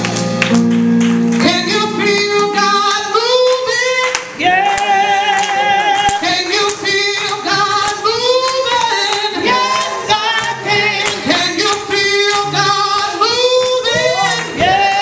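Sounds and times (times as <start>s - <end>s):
women singing gospel: 4.4s - 15.0s.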